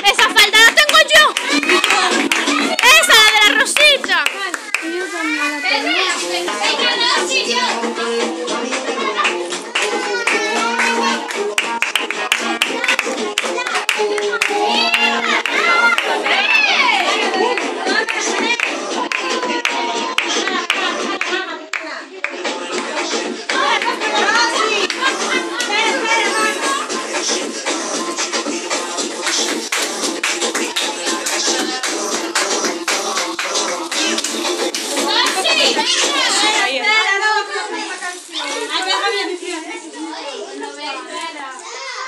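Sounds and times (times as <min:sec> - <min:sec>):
people clapping rhythmically: 0:00.0 - 0:36.7
girls' voices: 0:00.0 - 0:42.0
children shouting and squealing: 0:08.5 - 0:11.8, 0:12.4 - 0:21.5, 0:35.0 - 0:42.0.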